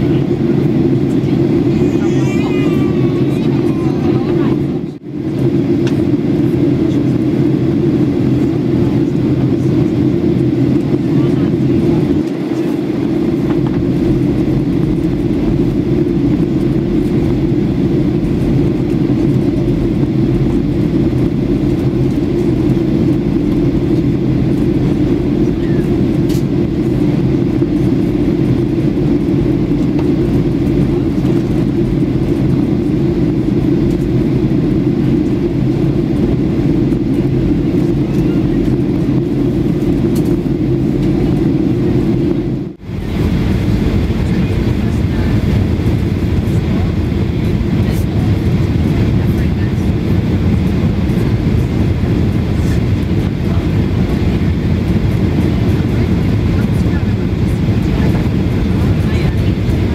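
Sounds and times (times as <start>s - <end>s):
airplane cabin engine roar: 0.0s - 59.9s.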